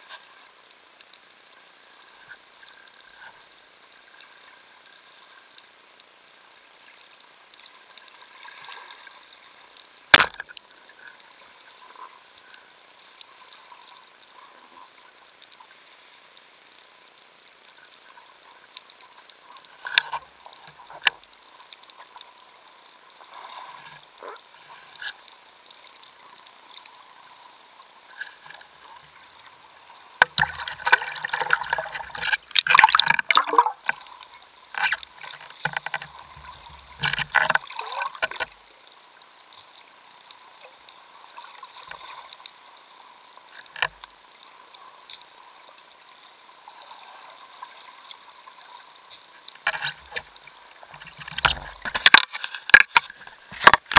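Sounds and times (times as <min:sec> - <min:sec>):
muffled underwater water splashing: 0:00.0 - 0:53.9.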